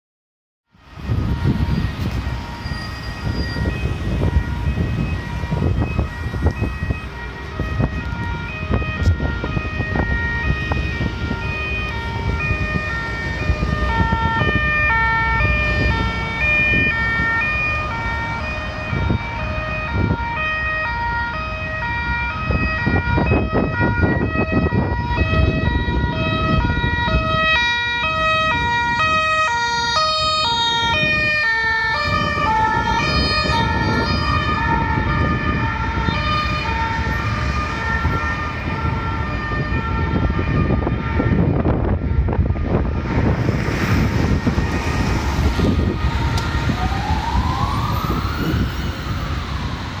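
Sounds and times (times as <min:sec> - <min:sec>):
ambulance siren: 0:00.7 - 0:50.0
heavy traffic noise: 0:00.7 - 0:50.0.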